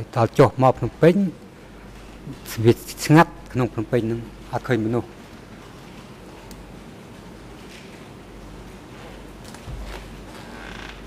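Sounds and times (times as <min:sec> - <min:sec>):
short creak: 0:09.8 - 0:11.0.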